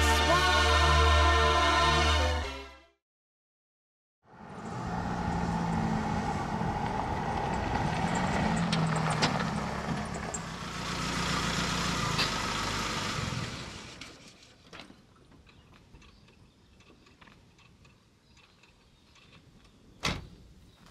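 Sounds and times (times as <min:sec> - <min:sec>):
vehicle engine and tyre noise: 0:04.2 - 0:20.9.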